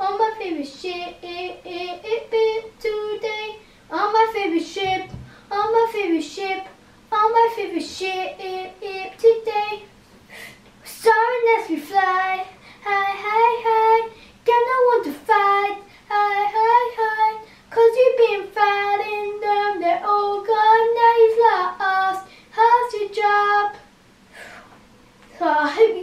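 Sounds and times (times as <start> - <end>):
child singing: 0.0 - 9.9, 10.9 - 23.9, 25.4 - 26.0.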